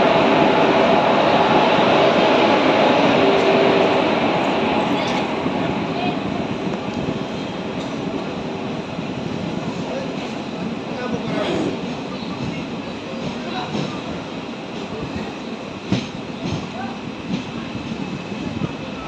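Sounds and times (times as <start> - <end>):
train rolling: 0.0 - 19.0.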